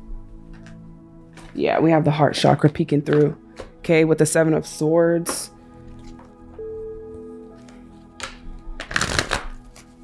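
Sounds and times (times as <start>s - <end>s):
cards being shuffled: 7.6s - 10.0s.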